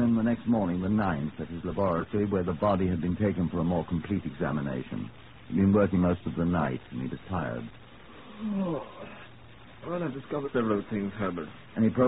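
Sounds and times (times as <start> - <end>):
man groaning: 8.3 - 9.3.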